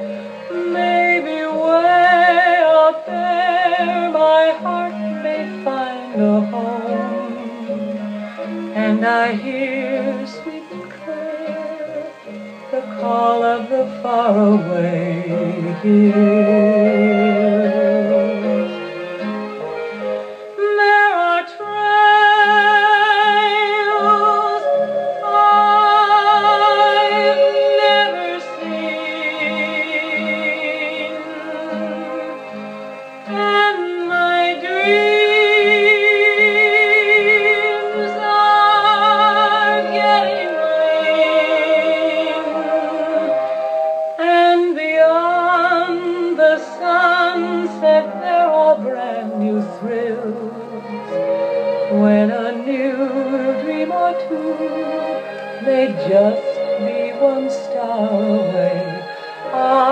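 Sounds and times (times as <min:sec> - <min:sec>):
orchestral melody with vibrato: 0:00.0 - 0:59.9.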